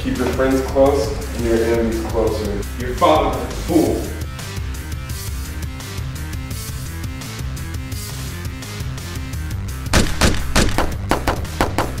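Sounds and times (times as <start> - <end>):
background music: 0.0 - 12.0
pistol shots: 9.9 - 12.0.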